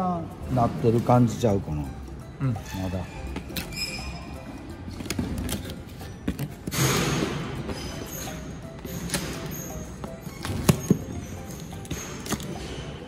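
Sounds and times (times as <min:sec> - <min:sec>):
background music: 0:00.0 - 0:13.0.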